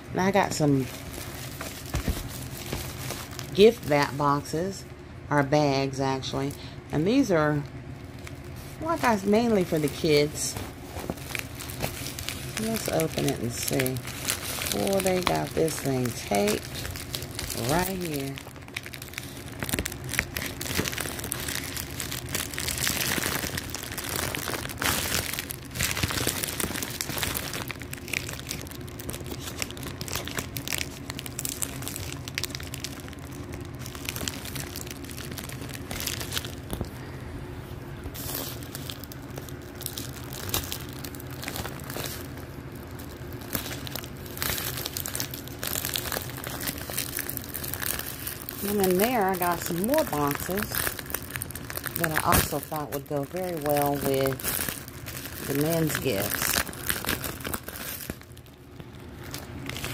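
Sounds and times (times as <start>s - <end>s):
plastic packaging crinkling: 0.0s - 4.7s, 5.9s - 59.9s.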